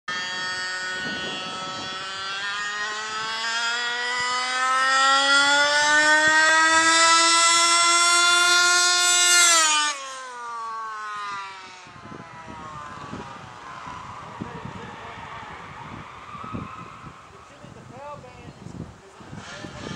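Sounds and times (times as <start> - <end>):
rc car engine passing by: 0.1 - 19.9.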